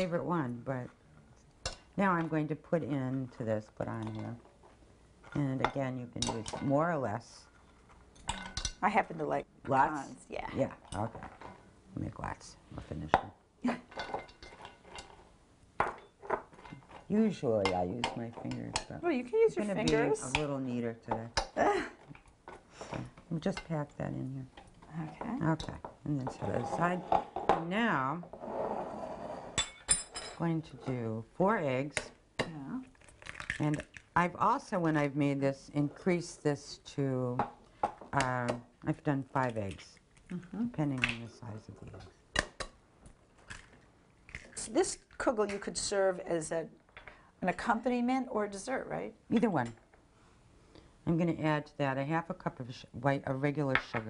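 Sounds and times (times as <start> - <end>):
woman speaking: 8.8 - 11.3, 18.4 - 22.0, 23.3 - 28.2, 30.4 - 32.9, 38.2 - 42.0, 47.4 - 49.8
eggs cracking over bowl: 31.9 - 34.3, 39.6 - 41.3, 42.3 - 45.6.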